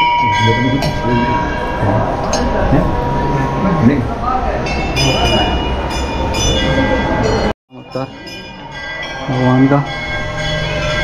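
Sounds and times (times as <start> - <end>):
temple bells ringing: 0.0 - 11.0.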